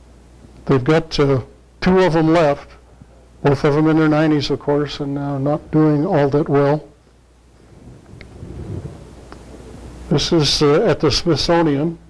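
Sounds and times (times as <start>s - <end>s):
microphone handling rumble: 7.5s - 10.2s.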